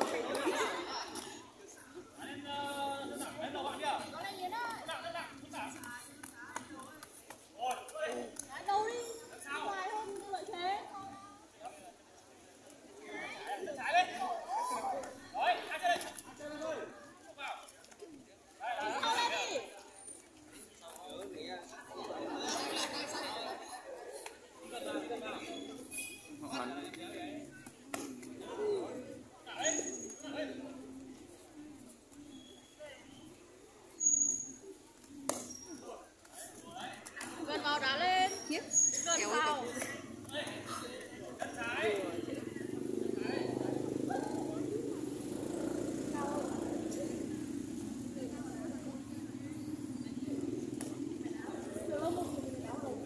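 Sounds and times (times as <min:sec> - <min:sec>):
people talking and calling out: 0:00.0 - 0:53.0
spectators chattering: 0:00.0 - 0:53.0.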